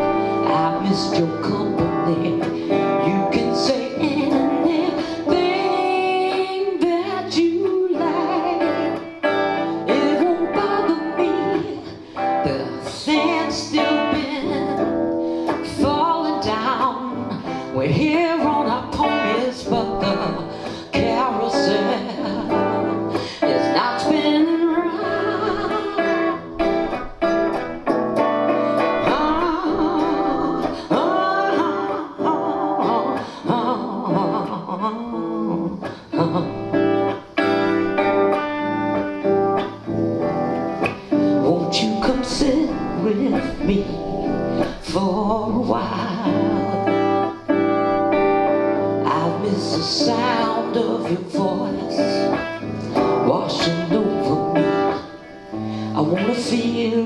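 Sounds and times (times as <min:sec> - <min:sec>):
electric guitar strummed and picked: 0:00.0 - 0:57.0
woman singing slow song: 0:00.0 - 0:57.0.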